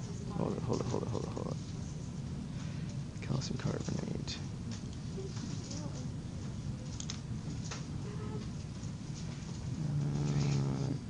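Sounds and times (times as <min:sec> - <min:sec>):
faint indistinct voices: 0:00.0 - 0:08.6
light clicks and rustles: 0:04.7 - 0:10.7.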